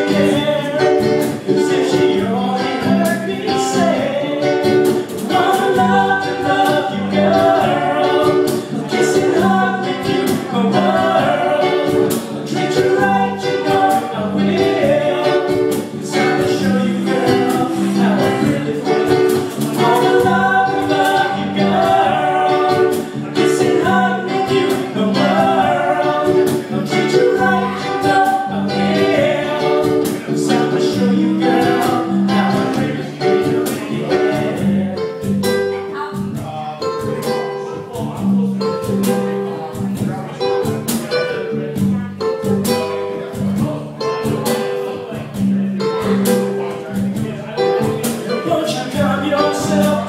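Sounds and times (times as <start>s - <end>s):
bass guitar: 0.0s - 50.0s
cajon beat: 0.0s - 50.0s
person singing: 0.0s - 50.0s
strummed ukulele: 0.0s - 50.0s.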